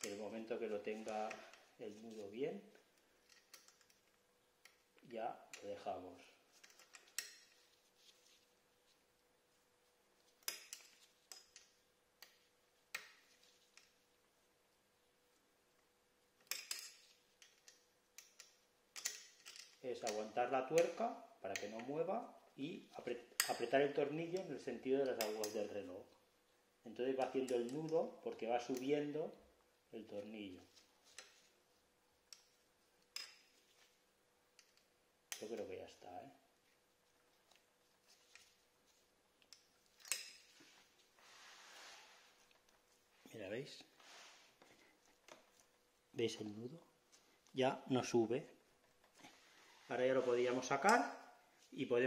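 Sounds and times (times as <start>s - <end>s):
soft rustle: 0.0s - 20.5s, 23.9s - 51.9s
metallic clicks and clinks: 39.4s - 40.6s.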